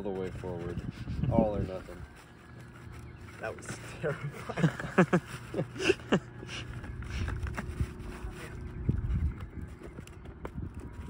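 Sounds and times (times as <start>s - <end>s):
steady low rumble: 0.3s - 11.0s.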